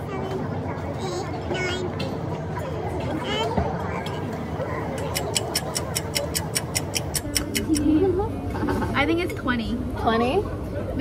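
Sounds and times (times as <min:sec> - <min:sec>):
quiet cafe chatter: 0:00.0 - 0:11.0
rapid clock-like ticking: 0:05.0 - 0:07.8.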